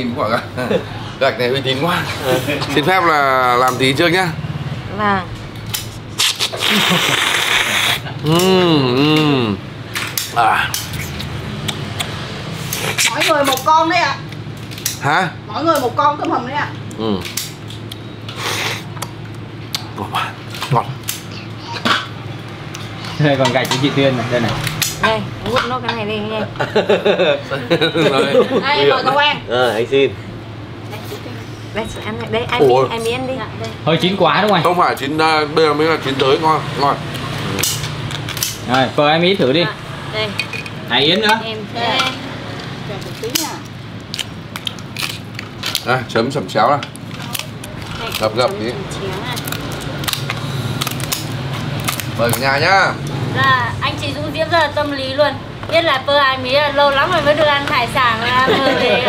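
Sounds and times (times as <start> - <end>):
lobster shell cracking: 44.0 - 46.0, 49.3 - 52.4
background chatter: 45.0 - 59.0.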